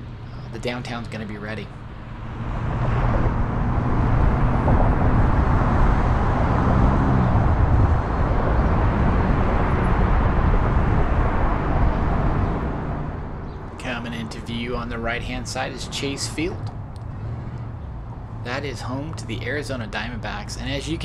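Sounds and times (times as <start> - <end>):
car engine low hum: 0.0 - 21.0
road and wind noise: 0.0 - 21.0.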